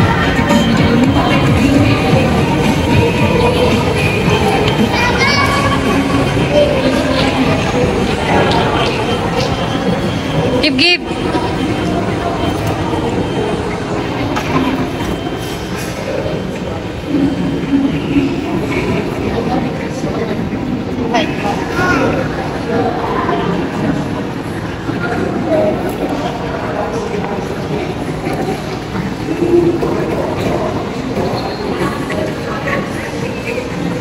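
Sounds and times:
indistinct crowd chatter: 0.0 - 34.0
kiddie train ride rumble and clatter: 0.0 - 34.0.

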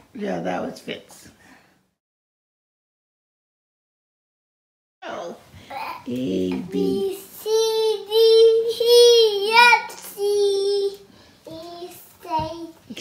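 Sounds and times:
toddler singing: 5.7 - 12.9.

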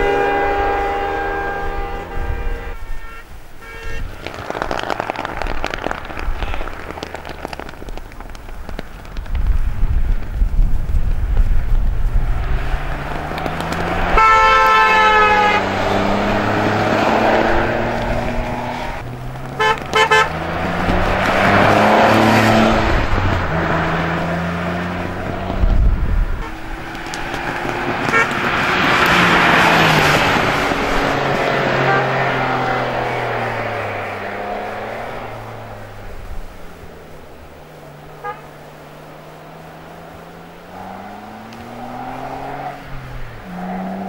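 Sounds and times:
car horn: 0.0 - 5.1, 13.6 - 23.0, 24.3 - 35.2, 38.2 - 38.7
car engine revving: 10.8 - 44.0.

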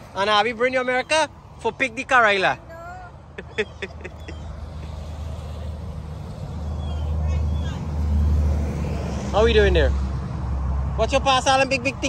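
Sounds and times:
highway traffic rumble: 0.0 - 12.0.

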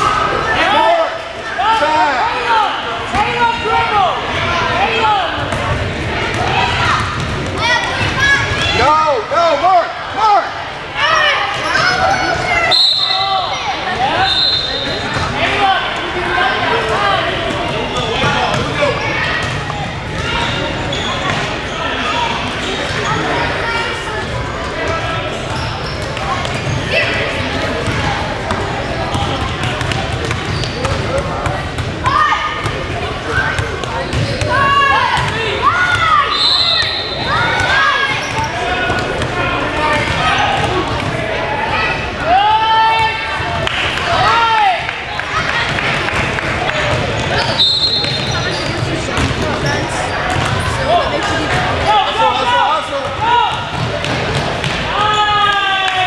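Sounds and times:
spectators' voices and shouts: 0.0 - 56.0
sneakers squeaking: 11.5 - 16.4, 17.2 - 42.2, 46.7 - 51.9, 53.0 - 55.5.

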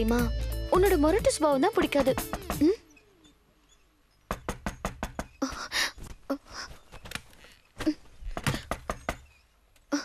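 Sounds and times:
knocking on wooden door: 4.3 - 5.4.

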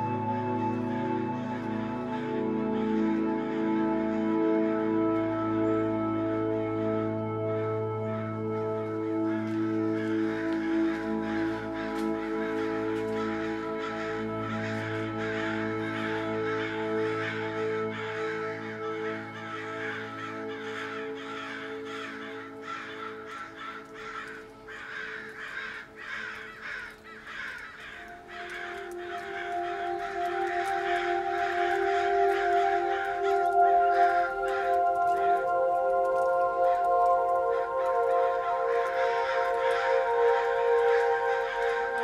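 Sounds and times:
drone chords: 0.0 - 42.0
bird-like calls: 7.4 - 42.0.

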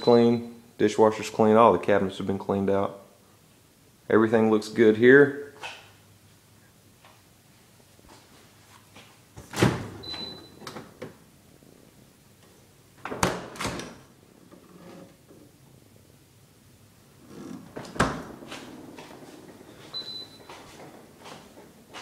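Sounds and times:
short high beep: 0.0 - 0.3.

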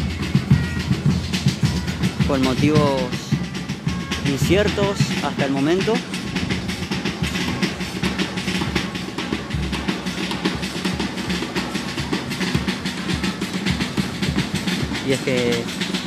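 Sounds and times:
drums beating fast rhythm: 0.0 - 16.0.

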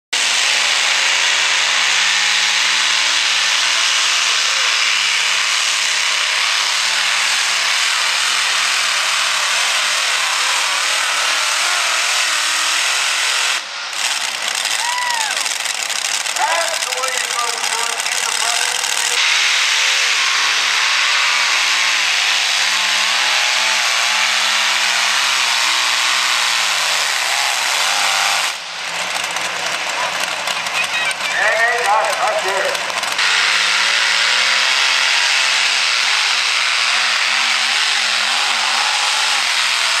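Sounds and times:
pulling tractor engines roaring: 0.2 - 40.0.

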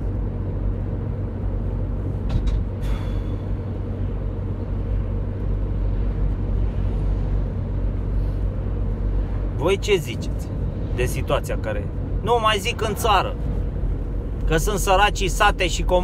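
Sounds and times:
road noise inside cabin: 0.0 - 16.0
van engine rumble: 0.0 - 16.0.

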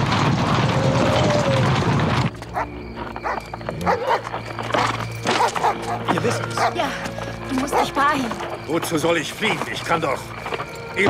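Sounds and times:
film music: 2.2 - 11.0.

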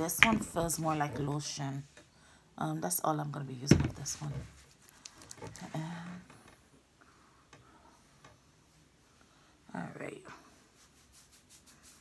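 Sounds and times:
hands rubbing hair product: 10.8 - 12.0.

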